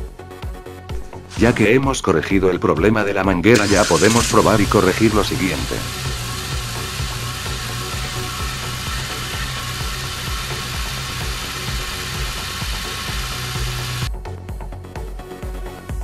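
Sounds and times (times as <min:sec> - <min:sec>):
car engine idling: 0:03.7 - 0:14.1.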